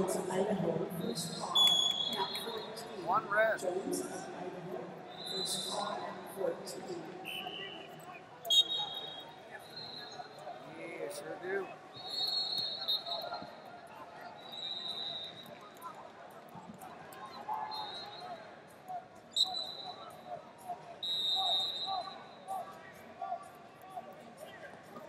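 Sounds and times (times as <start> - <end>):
referee whistle blasts: 1.5 - 2.4, 7.2 - 10.3, 11.9 - 13.5, 14.4 - 15.6, 17.6 - 18.3, 19.3 - 20.1, 21.0 - 22.4.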